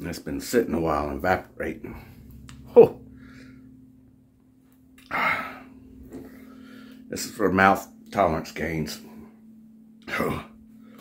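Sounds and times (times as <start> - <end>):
faint breath: 3.1 - 3.8, 5.1 - 7.1.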